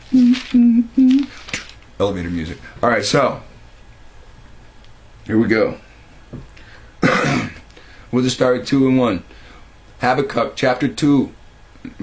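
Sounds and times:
man humming: 0.1 - 1.3.

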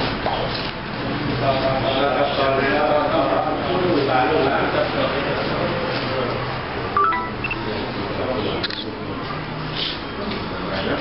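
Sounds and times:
short beeping tones: 7.0 - 7.7.

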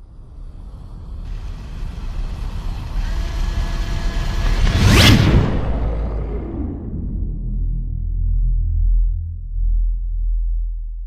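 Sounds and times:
rumbling whoosh: 0.0 - 11.0.

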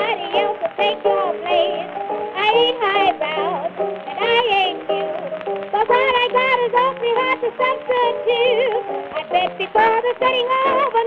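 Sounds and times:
acoustic blues instruments: 0.0 - 11.0.

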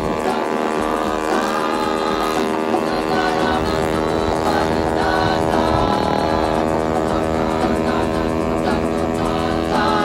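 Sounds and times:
scooter engine droning: 0.0 - 10.0.

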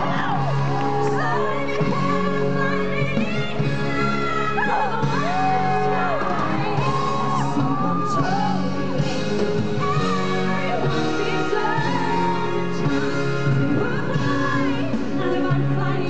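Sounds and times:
amplified backing track: 0.0 - 16.0.

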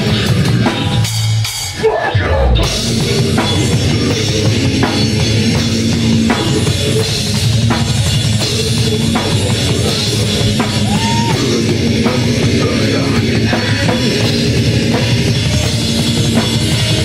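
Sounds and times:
heavy metal band playing: 0.0 - 17.0.

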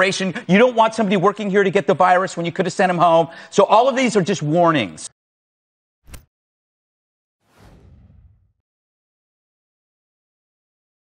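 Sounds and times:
whoosh sweeping into rumble: 7.4 - 8.6.

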